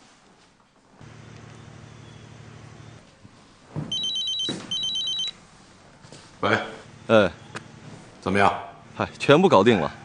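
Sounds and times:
mobile phone ringing: 0:03.9 - 0:05.4.

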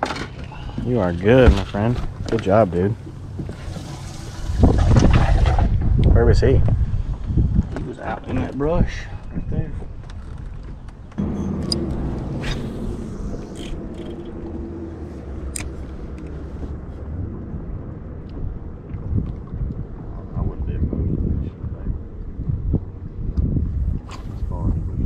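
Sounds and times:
wind rumbling on microphone: 0:00.0 - 0:25.0
boat motor humming: 0:02.0 - 0:04.6, 0:10.1 - 0:20.0.

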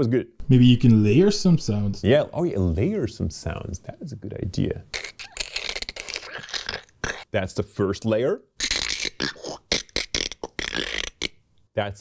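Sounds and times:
mouth clicks: 0:04.9 - 0:07.3, 0:08.6 - 0:11.4
man beatboxing: 0:08.6 - 0:11.4.

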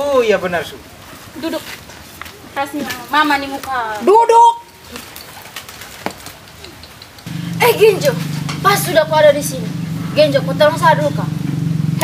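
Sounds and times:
bird calling faintly: 0:04.4 - 0:08.4.

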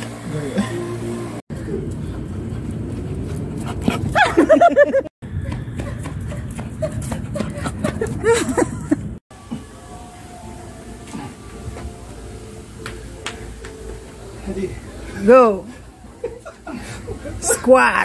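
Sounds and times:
street noise hum: 0:00.0 - 0:18.0.

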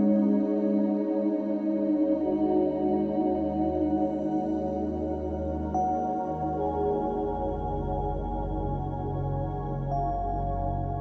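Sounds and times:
ambient drone music: 0:00.0 - 0:11.0.

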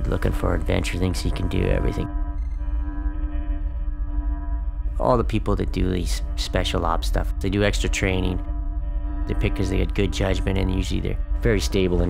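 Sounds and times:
deep rumble drone: 0:00.0 - 0:12.0
sustained mid-pitched tone: 0:00.0 - 0:12.0.

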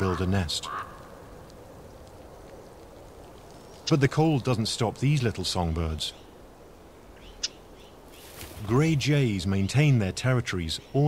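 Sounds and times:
low outdoor hiss: 0:00.0 - 0:11.0.

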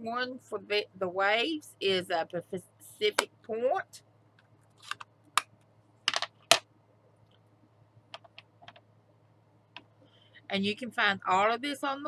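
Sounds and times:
plastic clicks and taps: 0:08.1 - 0:08.8.

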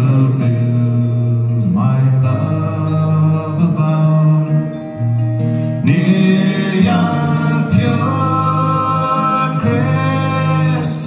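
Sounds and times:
folk band playing slow ballad: 0:00.0 - 0:11.0.

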